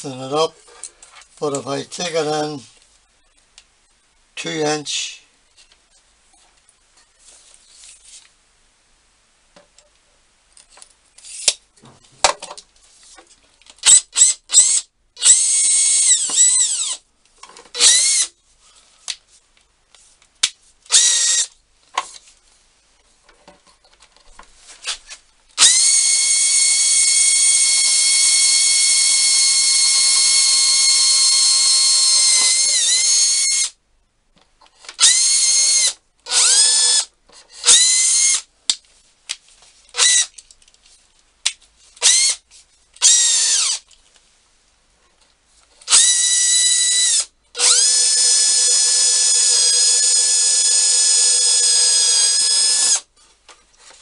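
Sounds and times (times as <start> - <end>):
electric drill boring wood: 14.6 - 17.0, 17.8 - 18.3, 20.9 - 21.5, 25.6 - 33.7, 35.0 - 38.4, 43.0 - 43.8, 45.9 - 53.0.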